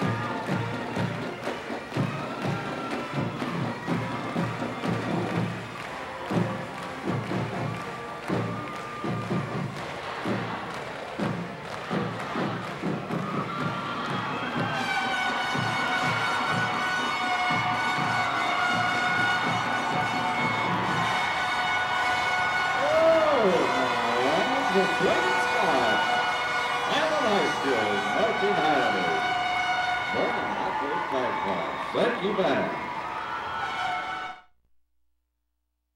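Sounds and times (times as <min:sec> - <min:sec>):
marching band drum strokes: 0:00.0 - 0:23.0
marching band holding a chord: 0:00.0 - 0:34.4
crowd cheering: 0:00.0 - 0:34.5.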